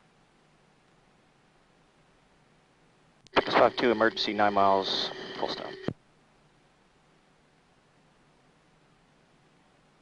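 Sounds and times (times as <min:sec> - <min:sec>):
steady hum: 0:00.0 - 0:10.0
radio transmission click: 0:03.3 - 0:06.0
radio voice: 0:03.4 - 0:05.9.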